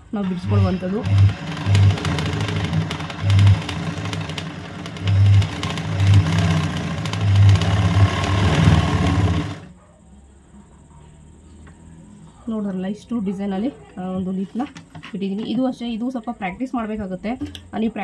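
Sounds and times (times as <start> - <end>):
sewing machine running fast: 0.3 - 9.7.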